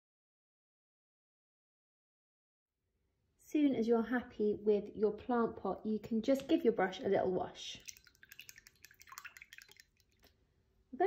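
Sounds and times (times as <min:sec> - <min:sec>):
water drips: 0:06.4 - 0:10.4
paintbrush rinsed in water: 0:06.7 - 0:10.3.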